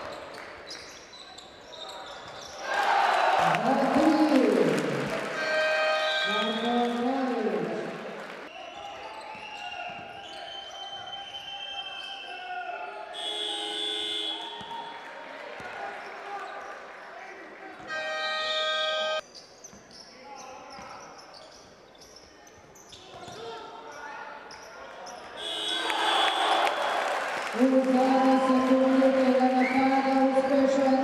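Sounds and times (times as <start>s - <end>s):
shoes squeaking on floor: 0.0s - 2.6s, 8.7s - 12.2s, 17.8s - 25.6s
buzzer horn: 5.3s - 6.8s, 13.2s - 14.6s, 17.9s - 19.2s, 25.4s - 26.5s.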